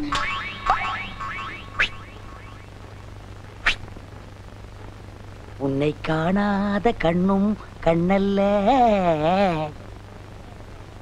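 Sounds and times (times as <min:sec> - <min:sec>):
steady low hum: 0:00.0 - 0:11.0
short sharp swish: 0:03.6 - 0:03.9.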